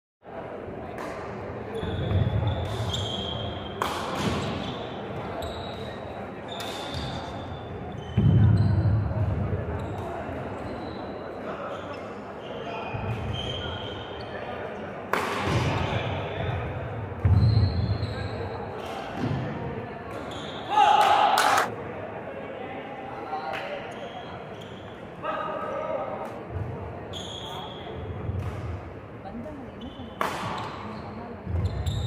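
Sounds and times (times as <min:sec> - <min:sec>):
shoe squeaks: 0:01.7 - 0:09.0, 0:09.8 - 0:14.5, 0:17.2 - 0:18.7, 0:20.2 - 0:20.8, 0:23.9 - 0:25.0, 0:27.1 - 0:28.0, 0:29.8 - 0:32.0
racket hitting shuttlecock: 0:03.8 - 0:04.6, 0:15.1 - 0:15.7, 0:30.2 - 0:30.8.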